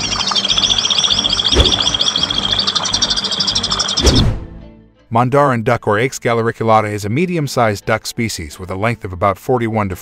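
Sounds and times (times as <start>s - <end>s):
high bird chirps: 0.0s - 4.3s
background music: 0.0s - 10.0s.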